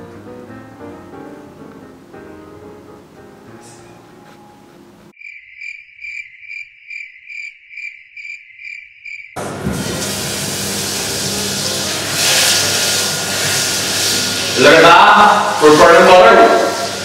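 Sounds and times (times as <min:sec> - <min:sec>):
butter and sugar sizzling in a pan: 0:09.8 - 0:17.0.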